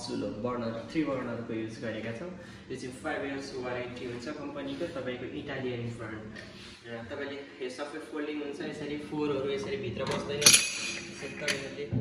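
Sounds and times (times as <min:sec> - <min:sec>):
metal burner parts handled: 0:10.0 - 0:11.7
metal clink ringing: 0:10.4 - 0:11.8.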